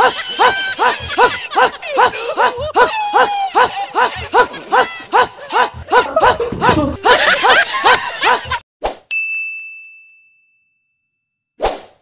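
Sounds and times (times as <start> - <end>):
bright ding: 9.1 - 11.3.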